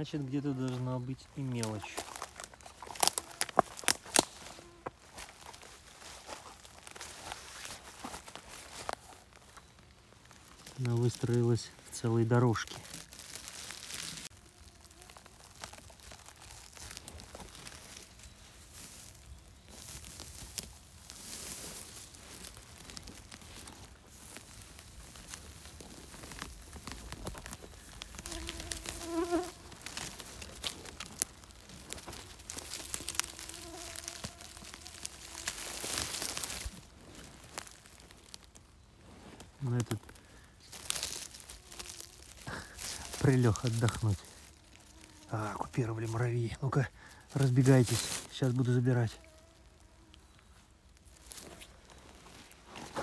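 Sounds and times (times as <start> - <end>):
rustling of needle litter and moss: 0.0 - 53.0
insect buzzing: 2.0 - 11.5, 12.4 - 39.0, 39.6 - 46.2, 47.0 - 52.6.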